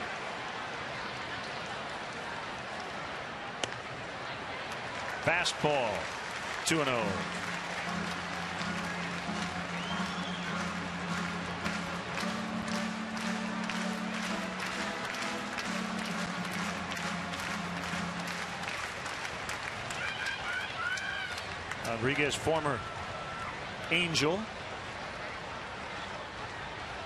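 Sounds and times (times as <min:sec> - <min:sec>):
stadium crowd murmur: 0:00.0 - 0:27.0
organ holding low notes: 0:06.7 - 0:19.1
hand claps: 0:06.7 - 0:22.0.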